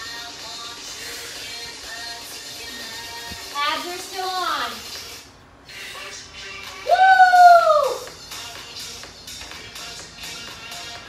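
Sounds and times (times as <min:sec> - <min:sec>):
workout music with steady beat: 0:00.0 - 0:11.0
woman cheering woo: 0:06.8 - 0:08.1.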